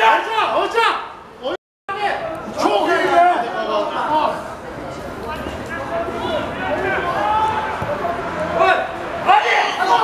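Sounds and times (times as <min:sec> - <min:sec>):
players and spectators calling out: 0:00.0 - 0:10.0.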